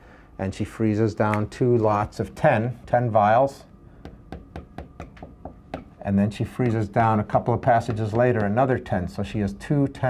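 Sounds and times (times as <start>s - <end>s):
marker tapping on whiteboard: 4.0s - 6.9s, 7.6s - 8.8s.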